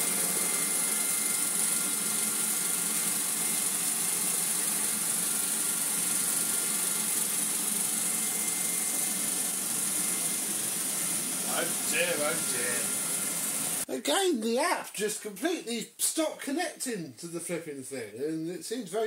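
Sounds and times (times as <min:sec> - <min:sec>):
thin high whine: 0:11.4 - 0:13.8.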